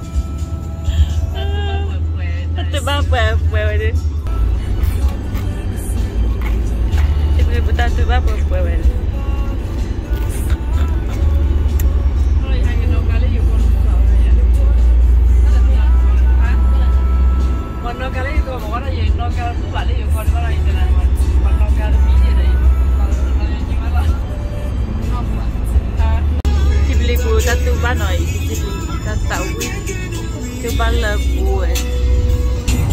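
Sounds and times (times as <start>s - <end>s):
music: 0.0s - 32.9s
van engine and road rumble: 0.0s - 32.9s
voices: 0.9s - 9.4s, 10.1s - 32.0s.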